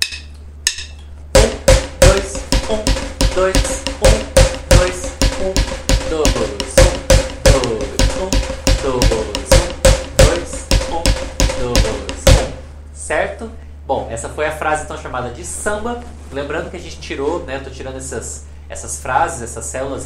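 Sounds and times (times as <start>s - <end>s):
drumsticks on snare practice pad: 0.0s - 12.7s.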